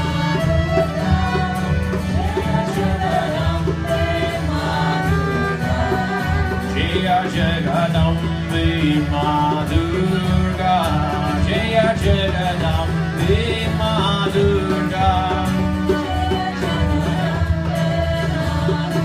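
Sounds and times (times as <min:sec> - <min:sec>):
harmonium reed chords: 0:00.0 - 0:18.1
acoustic guitar strummed: 0:00.0 - 0:19.0
voices singing a chant: 0:00.8 - 0:12.4.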